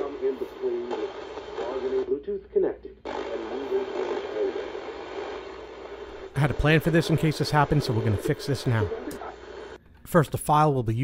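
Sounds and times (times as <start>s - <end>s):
static hiss: 0.0s - 2.4s, 3.0s - 9.8s
faint radio station: 0.0s - 11.0s.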